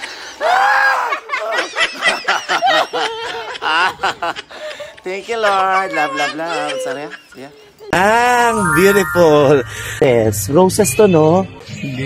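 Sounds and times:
people laughing: 1.1 - 4.8.

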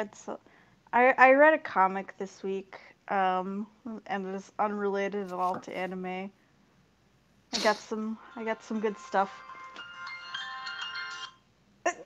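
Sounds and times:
phone ringtone melody: 8.2 - 11.4.

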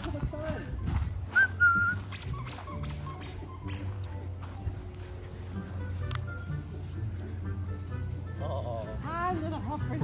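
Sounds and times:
puppy whimpers: 2.1 - 3.9
puppy whining and yelping: 2.1 - 4.0.

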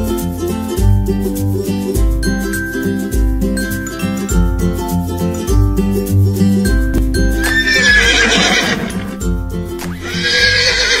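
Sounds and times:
background music: 0.0 - 11.0
horse whinnying: 7.4 - 9.2, 9.8 - 11.0.

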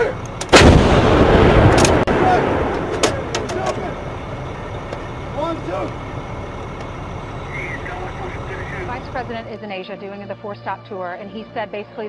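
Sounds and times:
steady low rumble: 0.0 - 12.0
sharp bang: 0.4 - 4.1
faint voices: 7.3 - 10.6.

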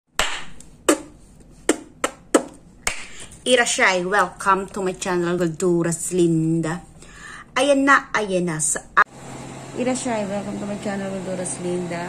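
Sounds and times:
sharp clap-like percussive hits: 0.1 - 3.2.

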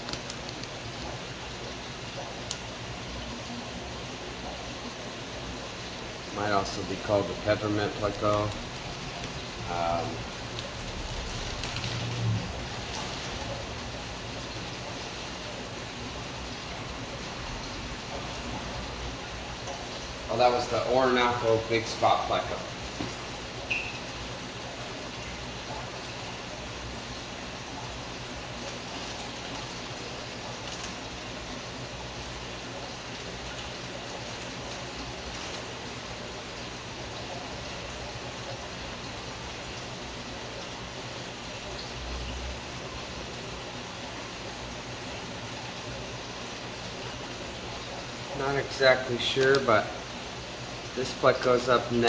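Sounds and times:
aquarium water rushing: 0.0 - 52.0.

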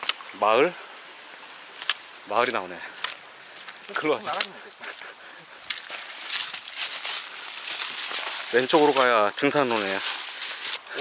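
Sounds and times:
brush and leaves rustling: 0.0 - 11.0.

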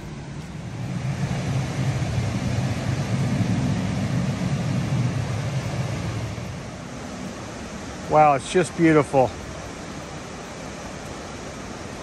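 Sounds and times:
river rapids rushing: 0.0 - 12.0.

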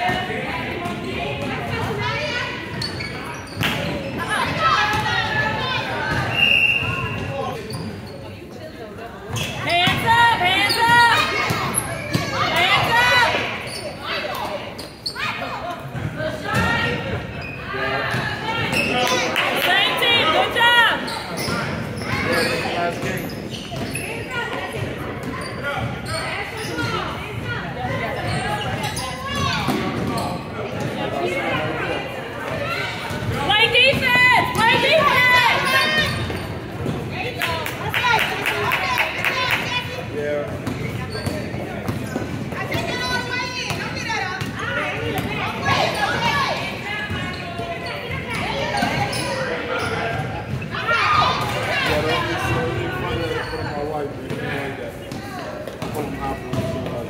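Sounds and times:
voices in a large gym: 0.0 - 57.0.

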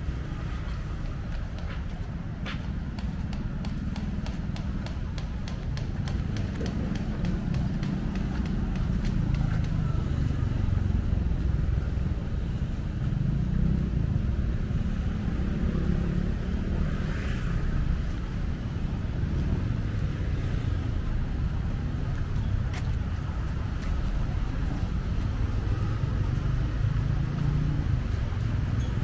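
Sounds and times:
low rumble of traffic: 0.0 - 29.0.

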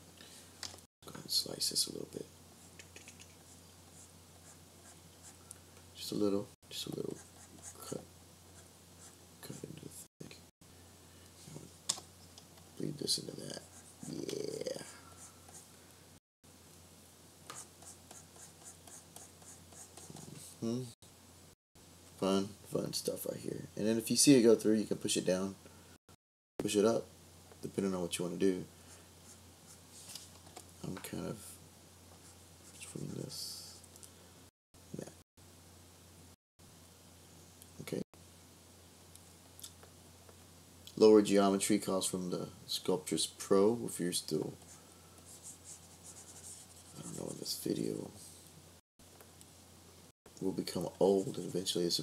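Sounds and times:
low electrical hum: 0.0 - 26.0, 26.6 - 52.0
stylus scratching on tablet: 7.0 - 8.0, 13.4 - 15.6, 17.5 - 20.5, 44.6 - 47.5.

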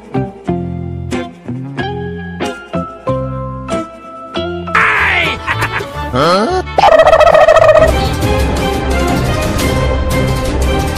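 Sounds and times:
high-pitched pulsing laugh: 5.2 - 8.0.

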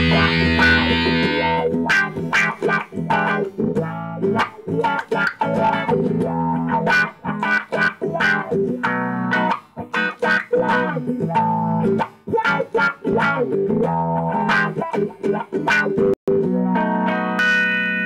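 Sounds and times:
electric guitar with wah: 0.0 - 18.0.

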